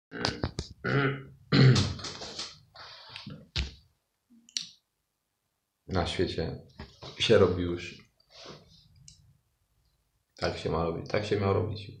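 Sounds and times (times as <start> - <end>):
man humming mm: 0.1 - 1.9
mouth click: 4.5 - 4.8
man speaking: 5.9 - 8.1, 10.4 - 12.0.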